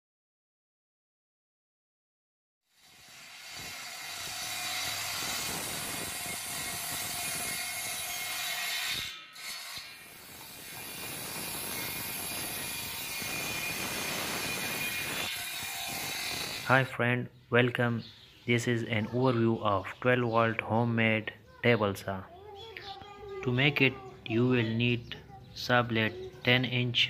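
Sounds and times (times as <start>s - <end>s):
table saw cutting wood: 2.7s - 16.7s.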